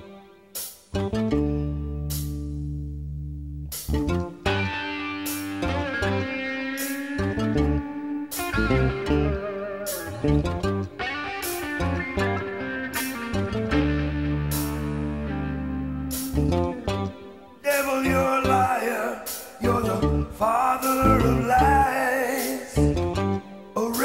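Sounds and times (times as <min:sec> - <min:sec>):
lead guitar with bent notes: 0:00.0 - 0:24.0
bass: 0:00.8 - 0:24.0.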